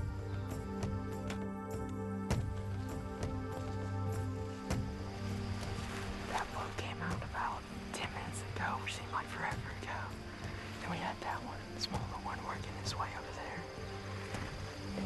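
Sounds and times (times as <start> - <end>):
soft background music: 0.0 - 15.0
person whispering: 6.3 - 10.2, 10.8 - 13.7.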